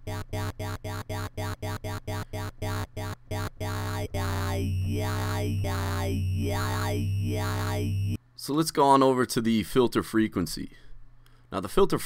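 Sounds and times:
talking wobble bass synth: 0:00.0 - 0:08.2.

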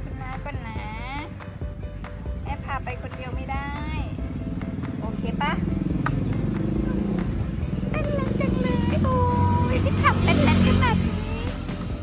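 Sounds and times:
background music: 0:00.0 - 0:12.0
vehicle engine droning: 0:03.3 - 0:12.0.

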